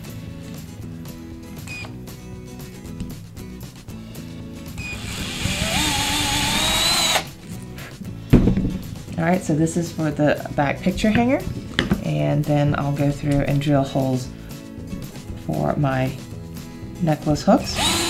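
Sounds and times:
background music: 0.0 - 18.0
power drill boring into wood: 4.8 - 7.3, 17.7 - 18.0.

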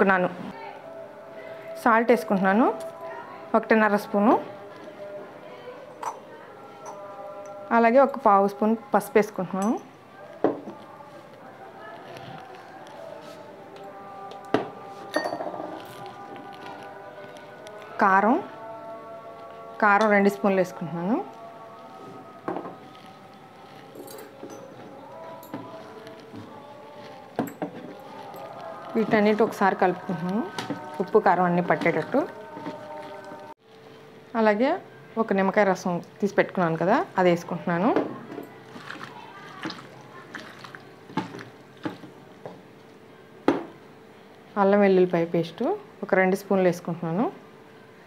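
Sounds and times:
hand mixing chicken in a bowl: 25.6 - 33.5, 38.6 - 42.2.

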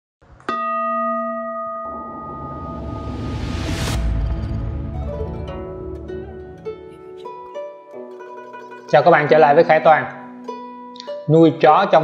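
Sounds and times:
singing bowl ringing: 0.5 - 7.2
rising whoosh: 1.6 - 7.8.

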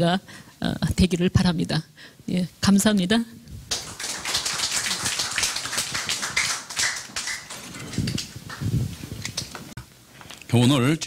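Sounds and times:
audience applauding: 3.7 - 8.7.

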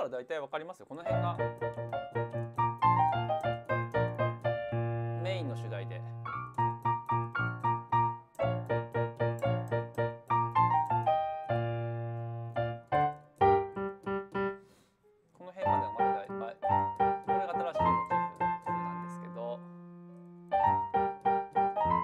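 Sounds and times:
piano playing classical chords: 1.0 - 14.7, 15.4 - 22.0.

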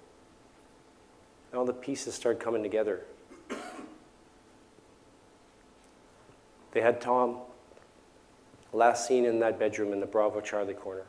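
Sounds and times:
person coughing: 3.3 - 4.0.

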